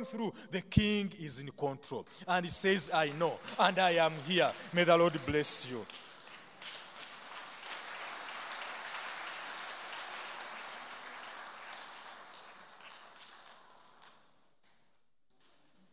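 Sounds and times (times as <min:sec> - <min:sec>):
congregation clapping: 0:02.2 - 0:14.9.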